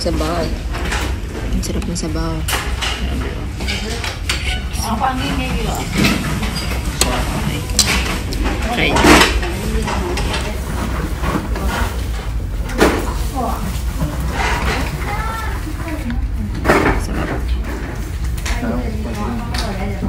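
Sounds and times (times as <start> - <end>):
tableware clinking: 2.4 - 12.2.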